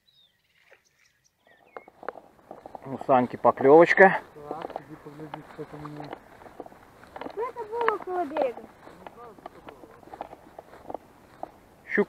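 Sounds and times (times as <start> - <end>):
footsteps through tall grass: 0.4 - 12.0
faint distant talking: 2.8 - 12.0.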